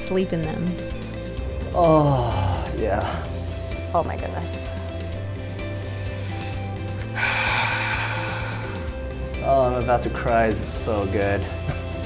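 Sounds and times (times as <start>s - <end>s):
background music: 0.0s - 12.0s
man breathing out loudly: 5.4s - 9.3s.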